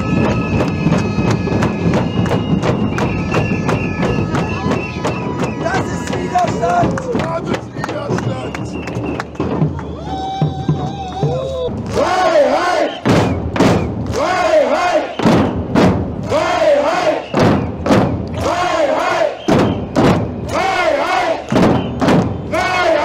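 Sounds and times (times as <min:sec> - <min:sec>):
frame drums and snare drums: 0:00.0 - 0:11.6, 0:12.9 - 0:14.1, 0:15.1 - 0:16.2, 0:17.2 - 0:18.6, 0:19.4 - 0:20.5, 0:21.4 - 0:22.6
crowd chanting: 0:11.8 - 0:13.4, 0:14.1 - 0:15.3, 0:16.2 - 0:17.7, 0:18.3 - 0:23.0.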